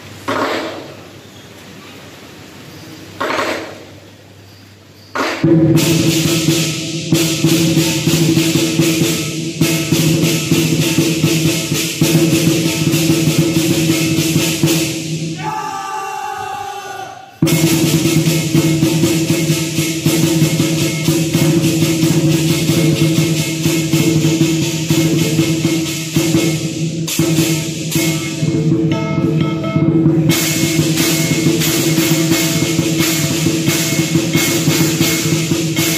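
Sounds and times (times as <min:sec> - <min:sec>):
lion dance percussion band: 0:05.1 - 0:35.9.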